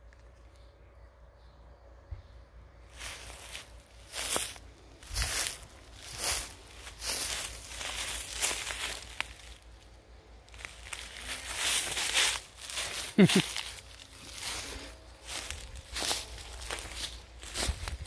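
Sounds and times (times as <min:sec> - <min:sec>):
footsteps through dry grass and leaves: 0:02.8 - 0:18.0.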